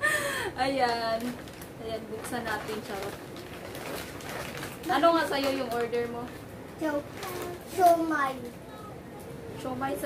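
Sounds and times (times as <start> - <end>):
paper bag rustling: 0.8 - 8.1.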